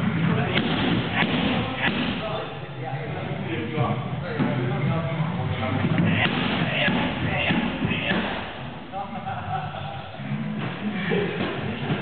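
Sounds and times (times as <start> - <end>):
murmur of voices: 0.0 - 12.0
kicks smacking striking pads: 0.5 - 2.2, 6.0 - 8.5.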